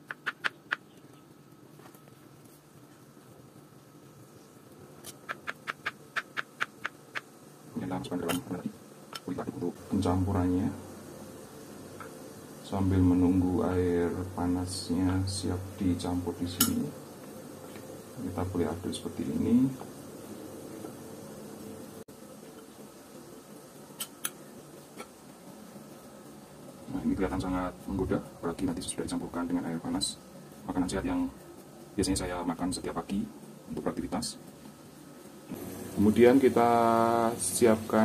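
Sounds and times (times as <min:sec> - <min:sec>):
faint steady hiss: 0:00.0 - 0:38.0.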